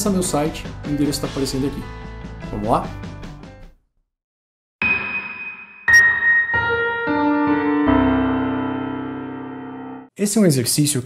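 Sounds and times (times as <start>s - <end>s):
piano jingle: 5.9s - 10.1s.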